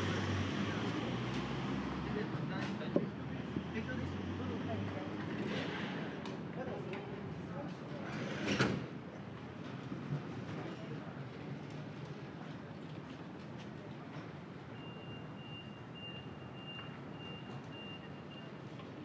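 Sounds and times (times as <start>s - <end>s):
city street traffic: 0.0s - 19.0s
reversing vehicle warning beep: 14.7s - 18.6s.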